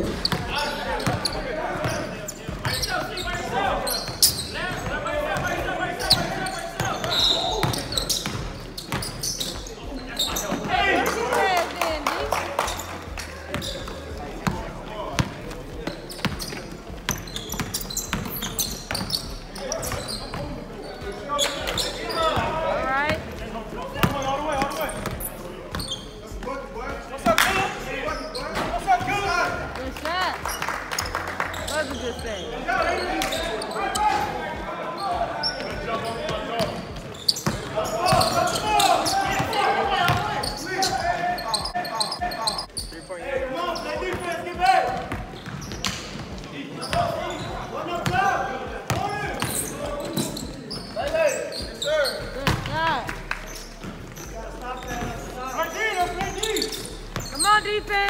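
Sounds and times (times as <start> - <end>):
players shouting and chatting: 0.0 - 58.0.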